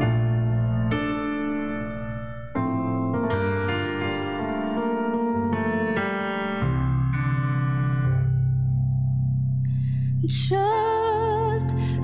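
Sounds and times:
electric piano chords: 0:00.0 - 0:12.0.

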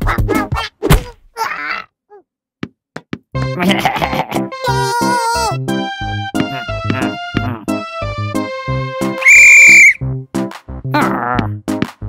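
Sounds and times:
upbeat cartoon music: 0:00.0 - 0:00.8, 0:03.4 - 0:12.0
referee's whistle blast: 0:09.2 - 0:10.0.

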